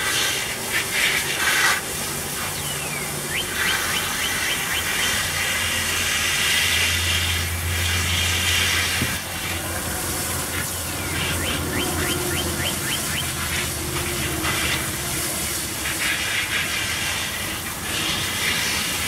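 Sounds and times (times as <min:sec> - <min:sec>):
hose spray nozzle hissing: 0:00.0 - 0:19.0.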